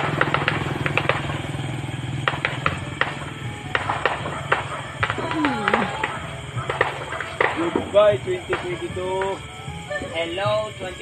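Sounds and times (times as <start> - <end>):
distant firecrackers popping: 0.0 - 11.0.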